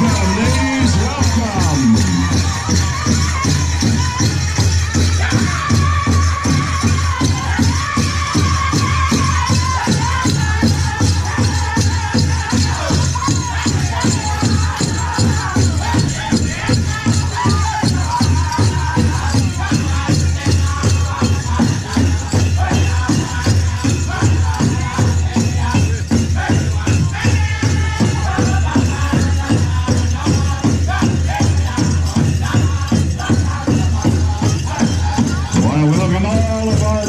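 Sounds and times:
drum group singing: 0.0s - 37.0s
large drum steady beat: 0.0s - 37.0s.

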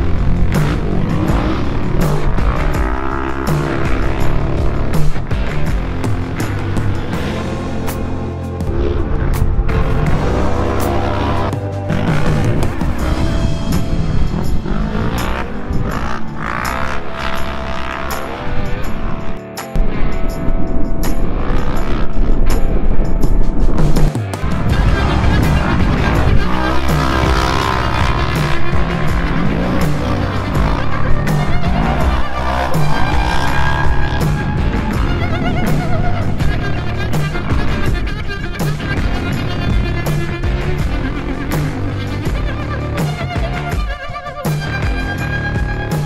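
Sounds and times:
race engines revving: 0.0s - 19.8s, 21.0s - 22.8s, 23.8s - 46.0s
background music with a beat: 0.0s - 46.0s.

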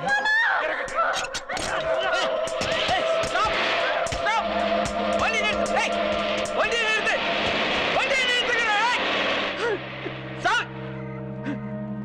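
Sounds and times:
low droning film score: 1.5s - 12.0s
bus passing by: 4.4s - 11.4s.

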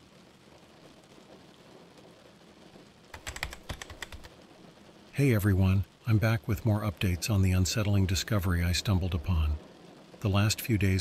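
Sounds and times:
faint steady hiss: 0.0s - 11.0s
fast keyboard typing: 3.1s - 4.3s.

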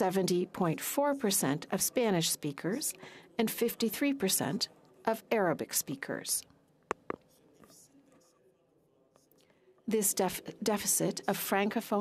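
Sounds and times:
breath: 3.0s - 3.4s, 9.4s - 9.9s.

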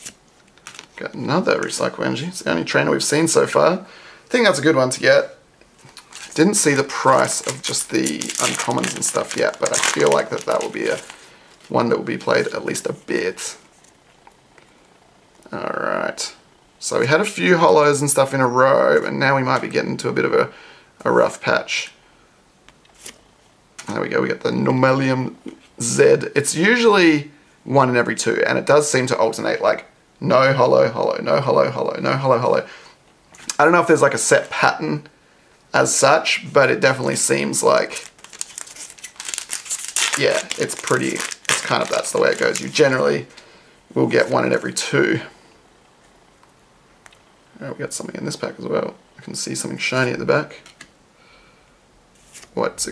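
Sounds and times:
foil wrapper crinkling: 5.8s - 12.6s, 37.8s - 43.3s.

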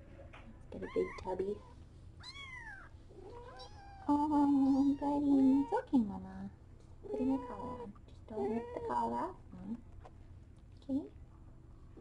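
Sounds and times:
kitten crying: 0.8s - 5.8s.

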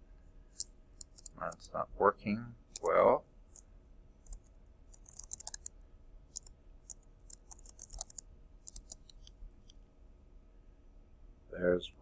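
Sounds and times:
computer keyboard keystrokes: 1.0s - 1.4s, 2.7s - 3.0s, 4.3s - 5.7s, 6.3s - 9.3s.

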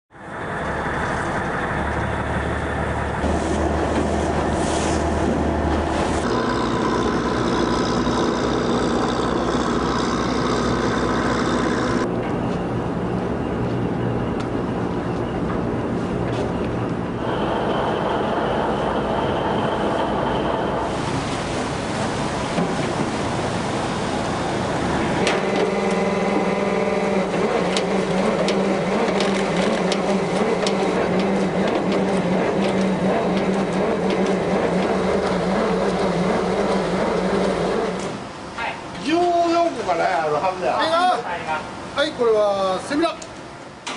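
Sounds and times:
water noise: 0.1s - 12.1s, 17.2s - 40.0s
boat engines running: 0.1s - 42.3s.

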